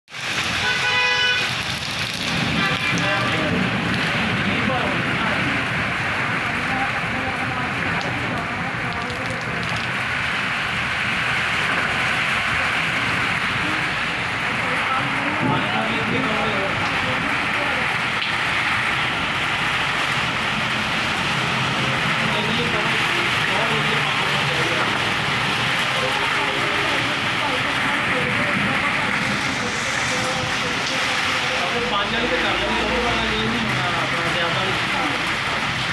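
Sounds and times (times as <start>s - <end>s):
heavy rain hissing: 0.1s - 35.9s
vehicle horn: 0.5s - 1.6s, 2.5s - 3.6s.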